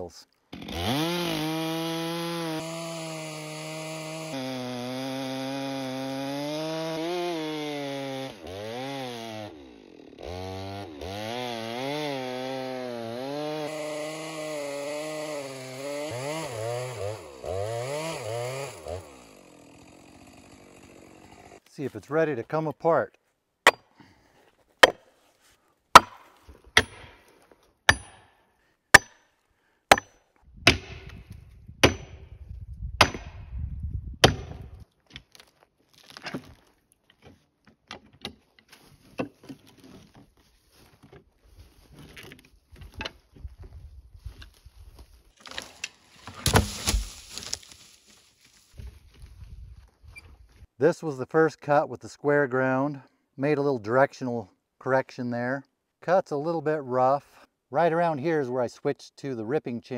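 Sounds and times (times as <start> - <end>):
wedge strikes into log: 23.6 - 23.9, 24.8 - 25.1, 25.9 - 27.2, 27.9 - 28.3, 28.9 - 29.2, 29.9 - 31.2, 31.8 - 32.2, 33.0 - 33.4, 34.2 - 34.7, 45.5 - 47.8
log splitting apart: 25.9 - 27.3, 34.2 - 37.0, 45.4 - 48.9.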